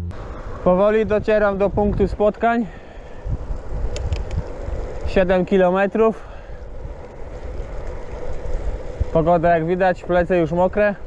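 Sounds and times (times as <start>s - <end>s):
wind buffeting microphone: 0.1s - 11.0s
tyres hissing on wet asphalt: 0.2s - 11.0s
faint ticks: 3.9s - 4.4s.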